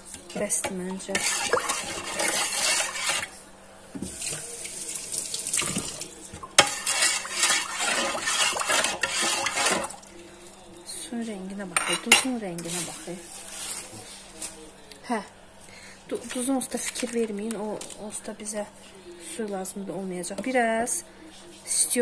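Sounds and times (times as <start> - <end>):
water sloshing in a pot: 0.0 - 3.4, 4.0 - 10.2.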